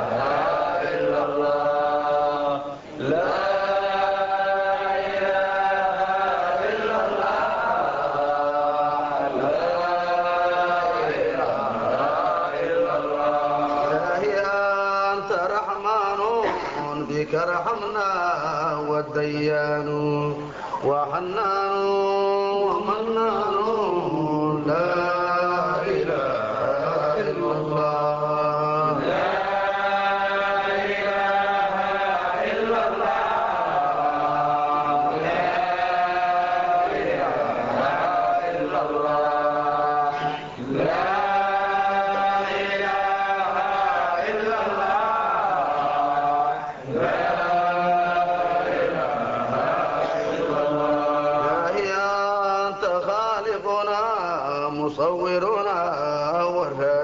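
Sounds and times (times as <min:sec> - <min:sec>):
voices chanting: 0:00.0 - 0:57.0.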